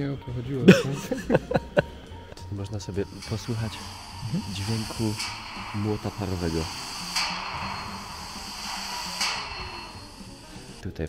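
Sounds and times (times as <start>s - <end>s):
steam hissing: 0.7s - 11.0s
steam hammer strike: 2.9s - 10.8s.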